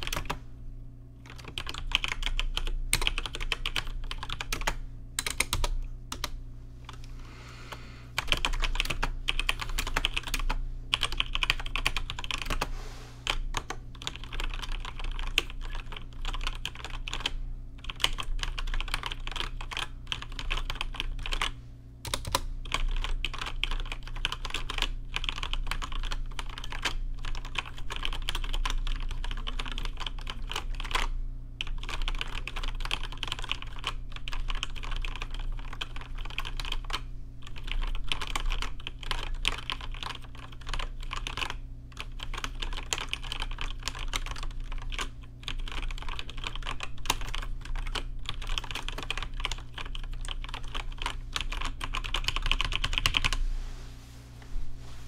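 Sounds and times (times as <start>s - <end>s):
fast keyboard typing: 0.0s - 0.4s, 1.2s - 7.0s, 8.2s - 53.4s.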